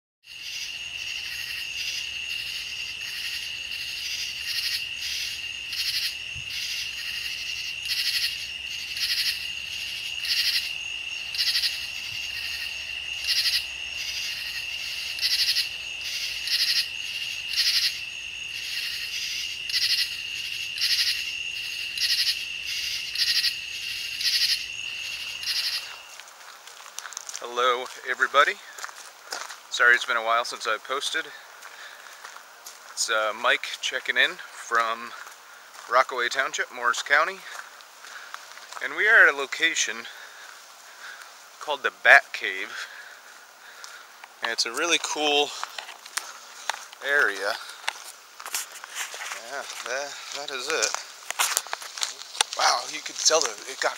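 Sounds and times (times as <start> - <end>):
short trilled insect calls: 0.3 - 27.2
high-pitched insect trill: 0.3 - 31.4.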